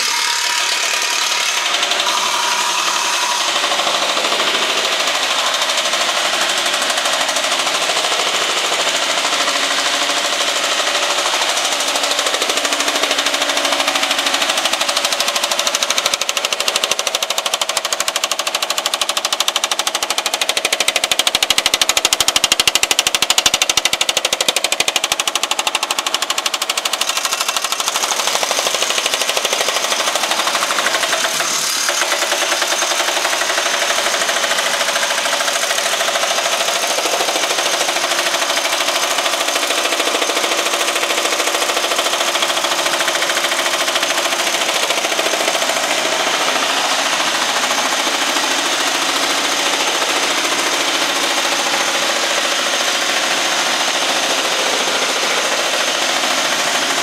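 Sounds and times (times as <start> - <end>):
power hammer hitting sheet metal: 0.0 - 57.0.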